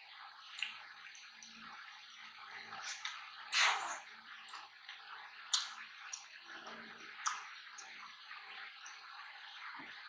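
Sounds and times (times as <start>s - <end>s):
wet mouth sounds: 2.8s - 4.7s.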